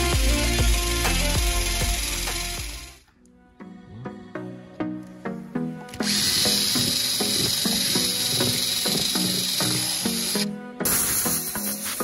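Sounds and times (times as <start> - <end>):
background music with a beat: 0.0 - 3.0, 6.9 - 12.0.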